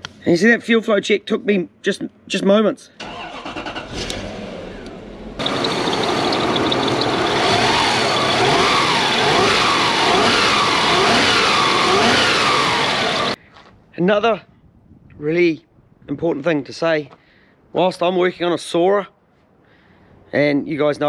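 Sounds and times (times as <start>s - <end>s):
car engine running: 3.9s - 13.4s.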